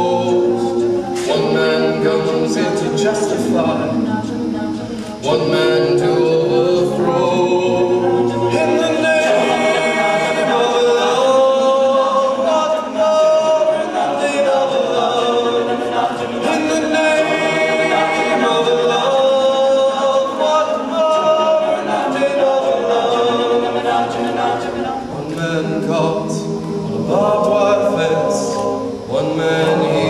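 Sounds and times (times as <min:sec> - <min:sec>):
male a cappella group singing: 0:00.0 - 0:30.0.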